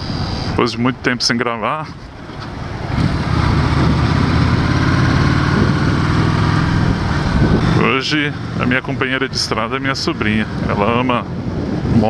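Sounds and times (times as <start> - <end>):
wind rush on microphone: 2.1 - 12.0
motorcycle engine running: 2.8 - 9.3.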